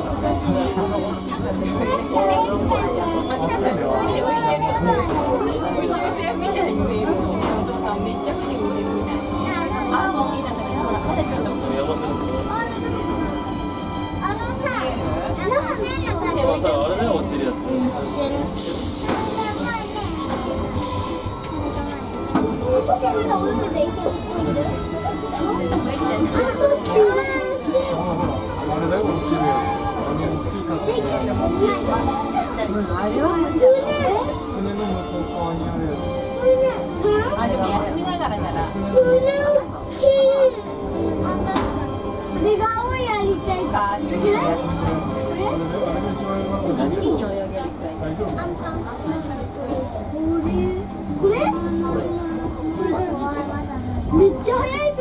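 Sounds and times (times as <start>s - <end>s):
monorail running rumble: 0.0s - 55.0s
children's excited voices: 1.4s - 6.6s, 18.3s - 28.4s, 38.8s - 44.8s, 48.3s - 55.0s.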